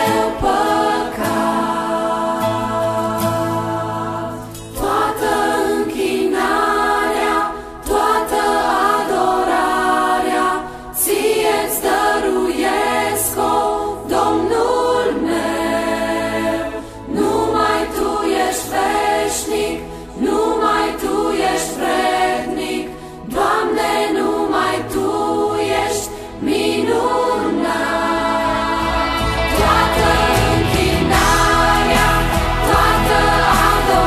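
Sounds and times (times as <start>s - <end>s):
choir singing slow song: 0.0s - 34.0s.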